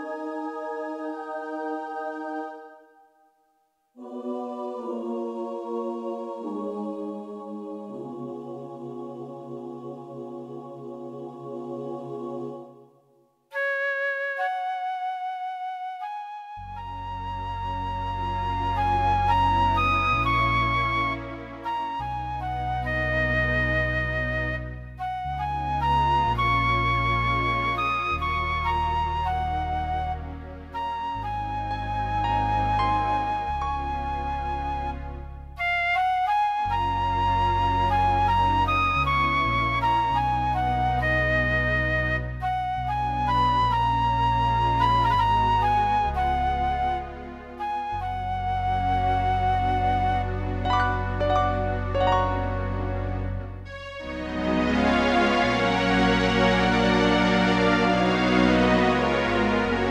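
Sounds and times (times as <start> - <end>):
organ playing slow melody: 50.2 - 59.9
organ solo melody: 50.3 - 53.7
home organ chord: 50.7 - 53.6.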